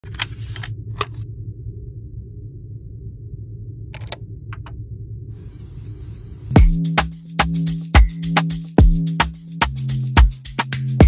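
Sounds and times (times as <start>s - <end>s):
low steady hum: 0.0s - 7.3s.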